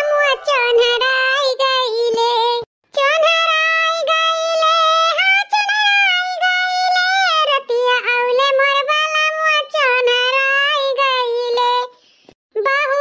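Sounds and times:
high-pitched voice singing: 0.0s - 13.0s.

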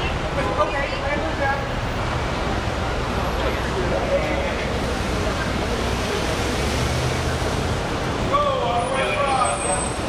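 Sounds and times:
traffic noise: 0.0s - 10.0s.

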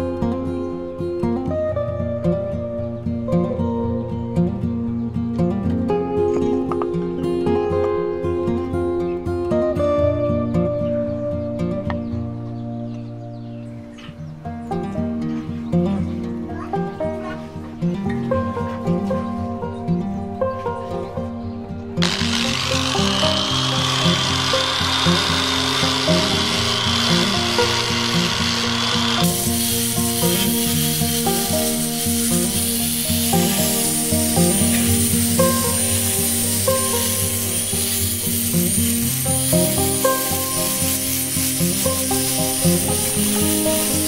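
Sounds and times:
background music with steady beat: 17.6s - 44.0s
angle grinder sanding wood: 22.0s - 44.0s.

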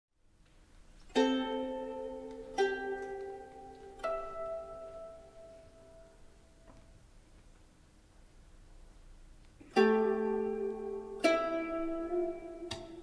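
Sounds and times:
plucked string notes: 1.1s - 6.3s, 9.6s - 13.0s.

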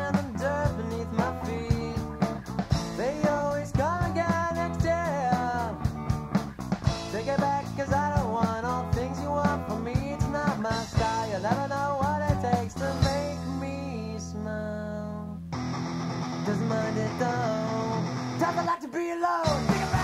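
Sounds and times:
bending guitar melody: 0.0s - 13.6s, 15.2s - 18.8s, 19.5s - 20.0s
drums: 0.0s - 13.9s, 15.6s - 20.0s
bass guitar: 0.0s - 18.7s, 19.5s - 20.0s.

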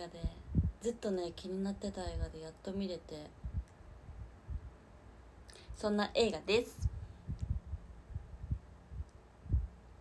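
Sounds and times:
faint steady hum: 0.0s - 10.0s
soft low thumps: 0.2s - 0.8s, 6.8s - 9.8s.

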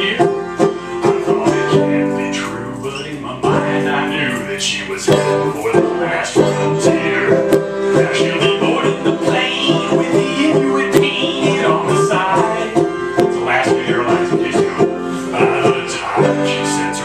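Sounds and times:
banjo strumming chords: 0.0s - 17.0s.

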